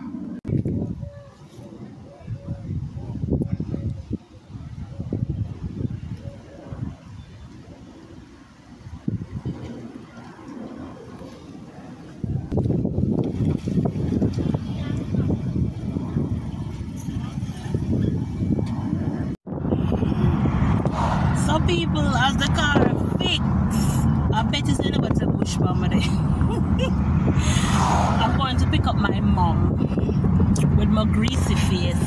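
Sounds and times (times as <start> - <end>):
car driving past: 19.6 - 24.4, 26.6 - 28.9.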